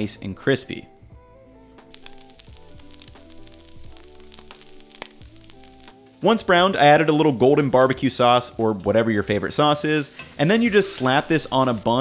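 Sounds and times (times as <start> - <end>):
soft background music: 0.0 - 12.0
meat sizzling on griddle: 1.9 - 6.2, 9.8 - 12.0.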